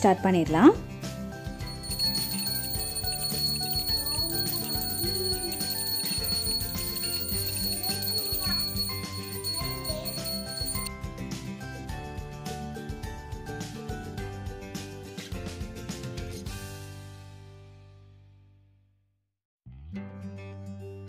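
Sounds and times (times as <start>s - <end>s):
music: 0.0s - 19.0s, 19.7s - 21.0s
hand bell ringing: 1.6s - 10.9s.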